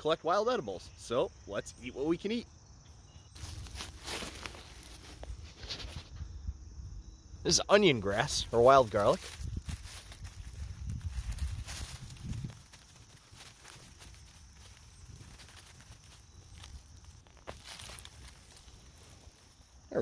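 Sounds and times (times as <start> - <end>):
dry leaves rustling: 3.3 - 6.1, 8.0 - 19.8
soil crackling: 3.3 - 6.2, 7.5 - 20.0.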